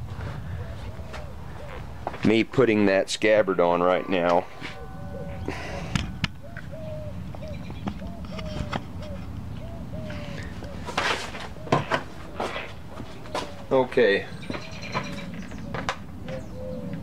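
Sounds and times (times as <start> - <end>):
low outdoor rumble: 0.0 - 17.0
bird calling: 0.4 - 2.2, 3.2 - 17.0.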